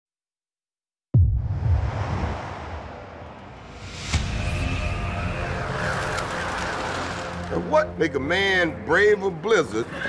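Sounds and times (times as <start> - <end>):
sudden musical hit: 1.2 - 7.3.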